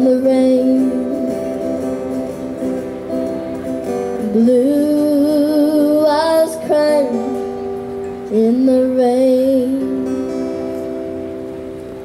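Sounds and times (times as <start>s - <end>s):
boy singing with vibrato: 0.0s - 2.0s, 4.2s - 10.8s
acoustic guitar: 0.0s - 12.0s.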